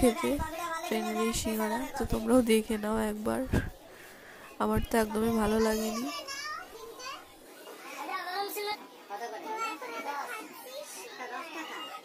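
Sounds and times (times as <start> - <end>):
people talking: 0.0 - 3.7, 4.6 - 6.6.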